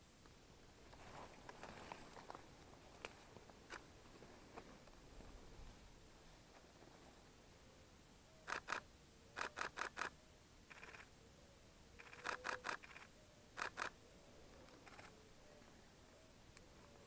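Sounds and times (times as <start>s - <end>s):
camera shutter clicks: 8.4s - 10.1s, 10.7s - 11.1s, 12.0s - 14.0s, 14.8s - 15.2s.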